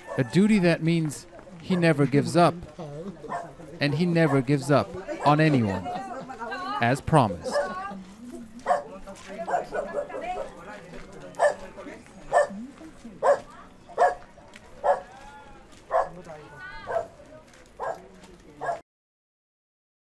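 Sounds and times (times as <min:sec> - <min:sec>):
street chatter of voices: 0:00.0 - 0:18.8
dog barking: 0:03.3 - 0:03.5, 0:07.4 - 0:07.8, 0:08.7 - 0:10.5, 0:11.4 - 0:11.7, 0:12.3 - 0:12.6, 0:13.2 - 0:14.2, 0:14.8 - 0:15.1, 0:15.9 - 0:16.2, 0:16.8 - 0:17.2, 0:17.8 - 0:18.0, 0:18.6 - 0:18.8.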